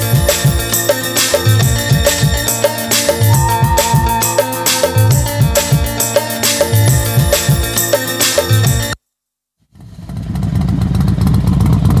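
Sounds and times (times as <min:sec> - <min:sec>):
engine-like rumble with rapid clatter: 0:09.8 - 0:12.0.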